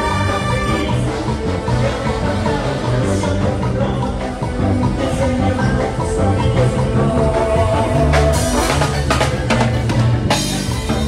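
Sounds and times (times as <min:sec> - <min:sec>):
live band playing: 0:00.0 - 0:11.0
steady bass line: 0:00.0 - 0:11.0.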